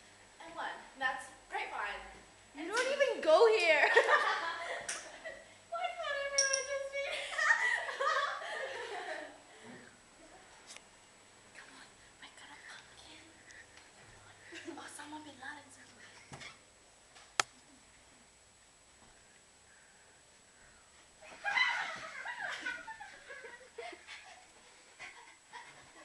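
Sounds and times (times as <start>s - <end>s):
stifled giggling: 21.2s - 26.0s.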